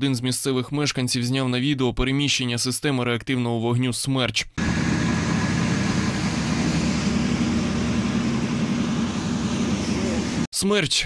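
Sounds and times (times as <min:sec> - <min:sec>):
truck diesel engine driving past: 0:04.6 - 0:10.5.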